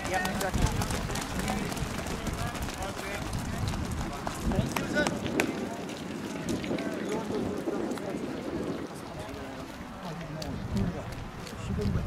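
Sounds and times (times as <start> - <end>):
murmur of voices: 0.0 - 12.0
runners' footfalls on wet track: 0.0 - 12.0.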